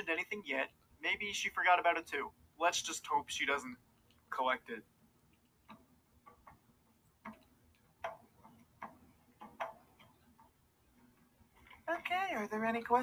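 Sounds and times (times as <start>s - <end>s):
clock ticking: 5.3s - 13.0s.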